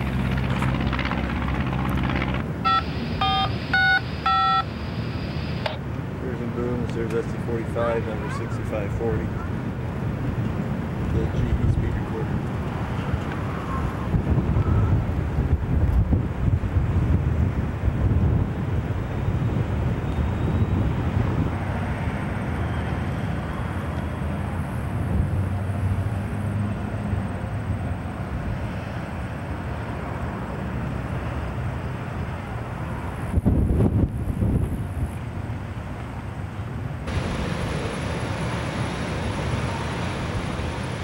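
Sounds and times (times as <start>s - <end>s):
wind buffeting microphone: 0.0s - 2.7s, 6.0s - 25.7s, 33.0s - 35.7s
diesel locomotive engine idling: 37.0s - 41.0s.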